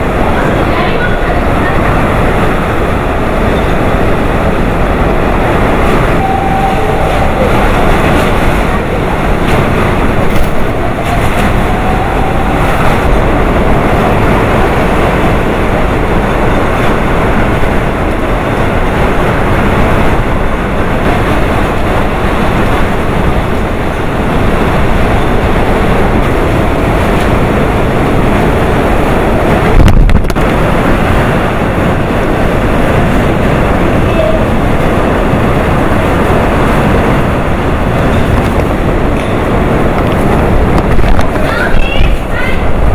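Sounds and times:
driving rain: 0.0 - 42.9
strong wind buffeting microphone: 0.0 - 42.9.

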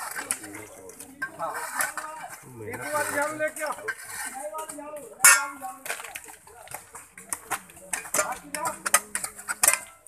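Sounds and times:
metal hoe chopping stony ground: 0.0 - 6.2, 7.2 - 10.0
people talking nearby: 0.0 - 10.0.

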